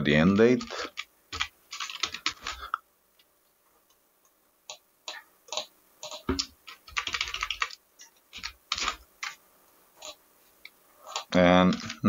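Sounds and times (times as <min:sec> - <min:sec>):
keyboard typing: 0:00.3 - 0:02.8, 0:04.7 - 0:09.4, 0:10.0 - 0:10.2, 0:11.1 - 0:12.0.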